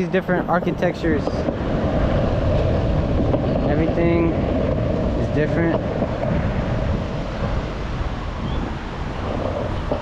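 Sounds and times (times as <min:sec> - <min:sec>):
cars passing: 0:00.0 - 0:10.0
wind on microphone: 0:00.0 - 0:10.0.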